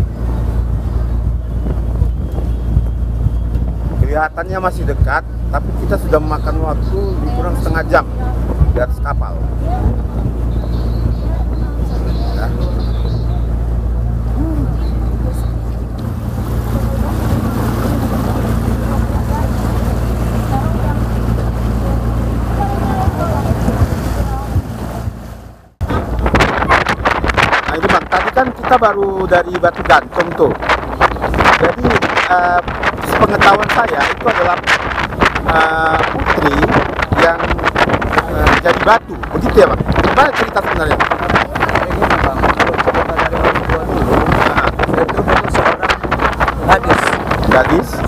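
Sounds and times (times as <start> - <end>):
boat engine drone: 0.0 - 48.0
churning propeller wash: 0.0 - 48.0
wind buffeting microphone: 0.0 - 48.0.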